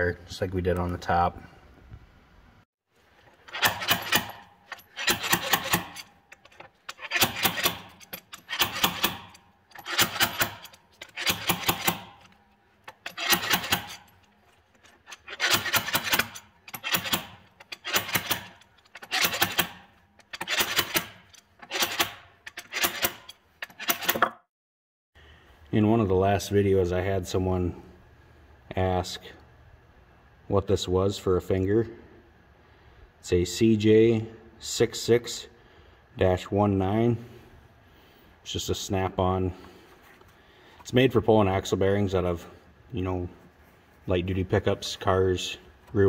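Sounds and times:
slide hammer metal clanks: 3.5s - 24.3s.

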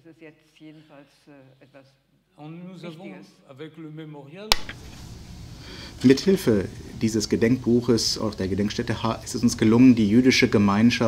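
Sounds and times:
woman's voice: 0.0s - 2.1s
microphone click: 4.5s - 5.0s
microphone hiss and rumble: 4.5s - 11.0s.

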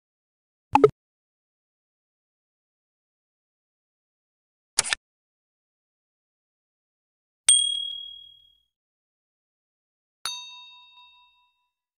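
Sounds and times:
high thin ding: 7.5s - 8.5s.

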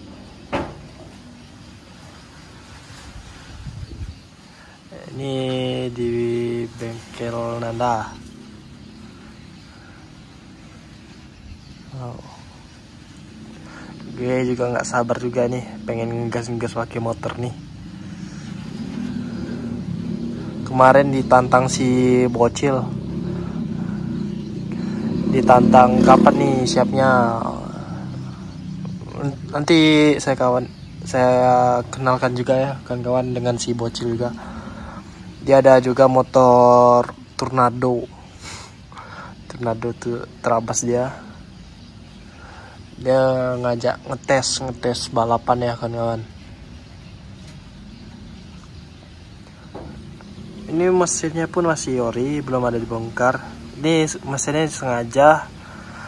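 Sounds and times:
low hum: 0.0s - 30.2s.

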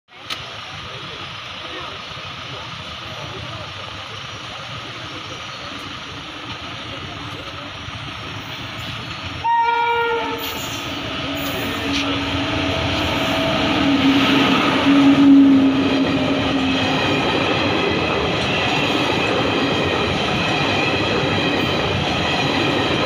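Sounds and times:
train rumble: 0.1s - 23.0s
locomotive horn blast: 9.3s - 17.0s.

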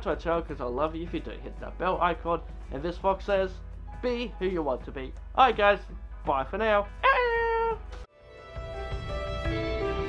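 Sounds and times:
outro music with held notes: 6.9s - 10.0s
person making animal-like call: 7.0s - 7.8s.

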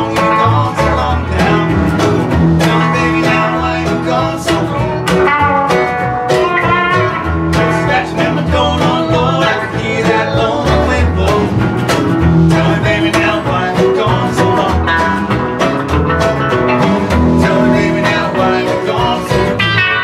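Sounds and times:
acoustic guitar: 0.0s - 20.0s
electric guitar: 0.0s - 20.0s
upright bass line: 0.0s - 20.0s.

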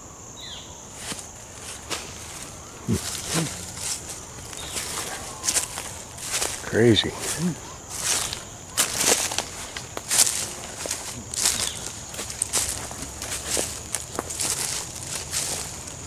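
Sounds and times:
footsteps in dry leaves: 0.9s - 16.0s.

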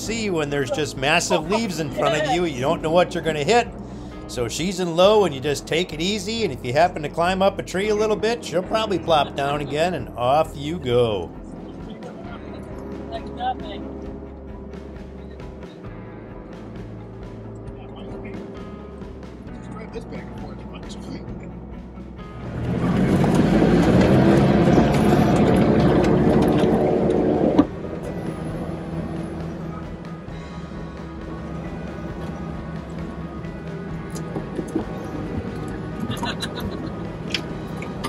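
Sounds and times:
diesel engine running: 0.0s - 38.0s.

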